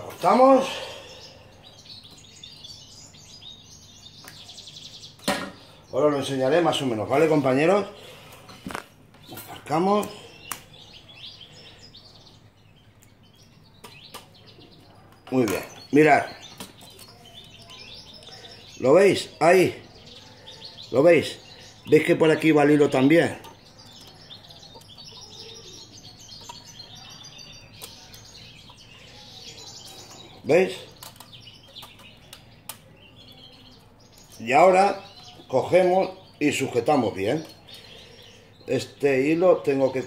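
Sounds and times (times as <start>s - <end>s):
small bird chirping: 0.0s - 40.0s.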